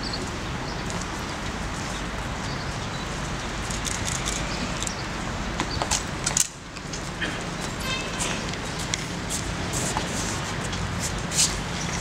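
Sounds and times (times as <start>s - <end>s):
outdoor crowd and street noise: 0.0s - 12.0s.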